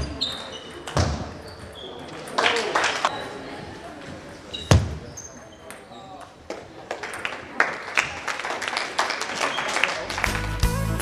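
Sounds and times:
voices in a large hall: 0.0s - 11.0s
music with steady beat: 10.3s - 11.0s.

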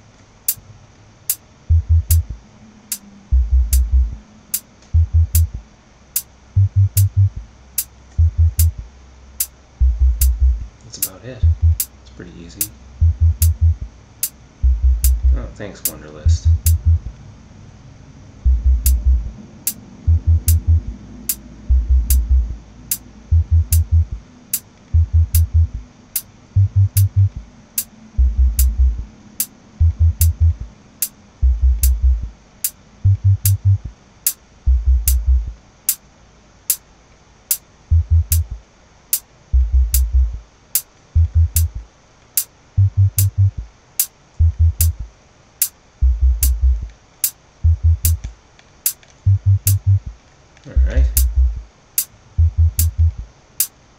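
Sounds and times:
hi-hat ticks: 0.0s - 0.6s, 1.2s - 17.2s, 18.5s - 36.0s, 36.7s - 36.9s, 37.5s - 53.8s
bass and kick pattern: 1.3s - 17.2s, 18.4s - 19.4s, 20.1s - 25.9s, 26.5s - 29.1s, 29.7s - 32.4s, 33.0s - 34.0s, 34.7s - 35.6s, 37.9s - 38.6s, 39.5s - 40.4s, 41.2s - 41.8s, 42.8s - 43.7s, 44.4s - 45.1s, 46.0s - 46.9s, 47.6s - 48.3s, 49.2s - 51.7s, 52.4s - 53.3s.

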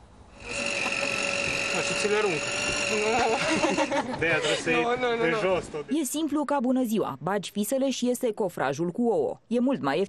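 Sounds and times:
electric motor whine: 0.3s - 4.2s
people talking: 1.8s - 10.0s.

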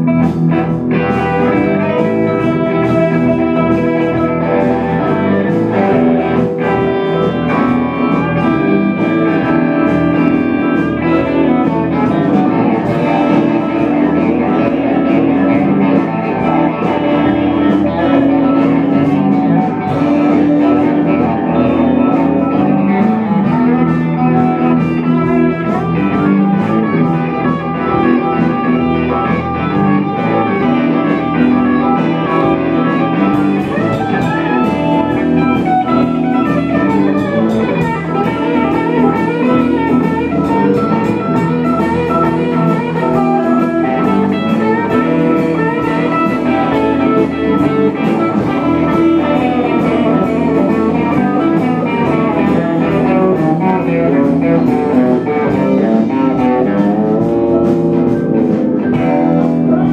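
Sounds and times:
bass and drums: 0.0s - 59.9s
electric guitars: 0.0s - 59.9s.

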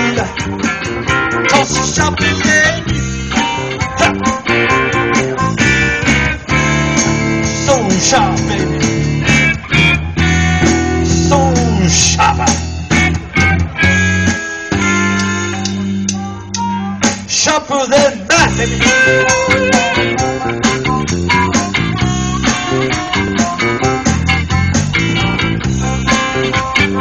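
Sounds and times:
bass guitar: 0.0s - 27.0s
drums: 0.0s - 27.0s
electric guitars: 0.0s - 27.0s.

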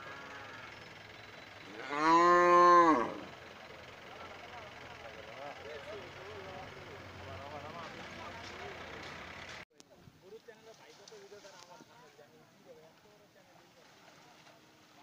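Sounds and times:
cow mooing: 0.0s - 0.8s, 1.7s - 3.4s.

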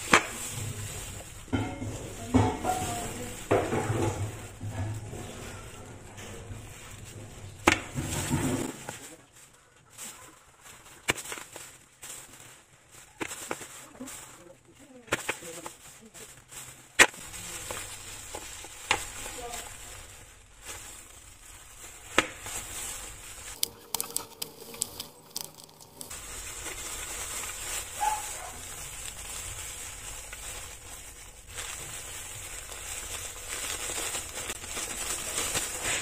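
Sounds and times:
chocolate crackling: 0.0s - 36.0s
knife crunching through chocolate: 23.5s - 26.7s.

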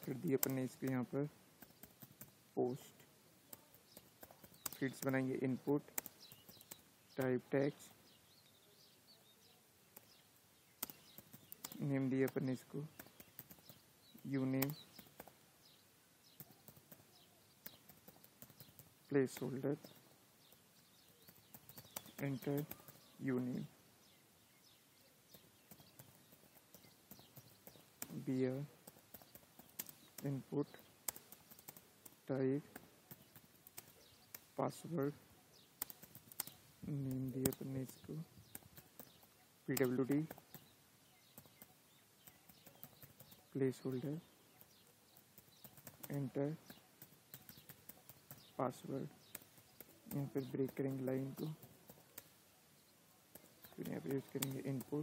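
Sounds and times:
computer keyboard typing: 10.8s - 15.3s, 21.2s - 23.1s, 28.8s - 30.3s, 31.0s - 34.4s, 38.4s - 43.5s, 44.6s - 48.6s.

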